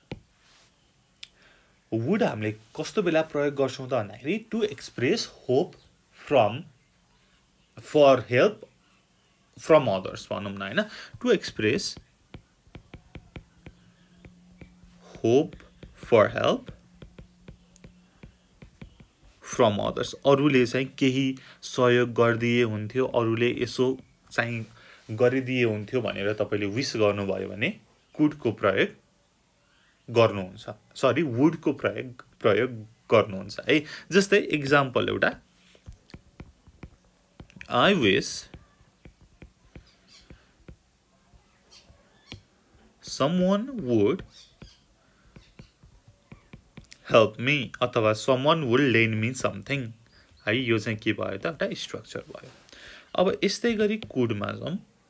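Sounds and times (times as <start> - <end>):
stylus tapping on glass screen: 0.0 - 0.3, 11.1 - 19.3, 35.7 - 41.5, 42.2 - 42.5, 44.1 - 47.0.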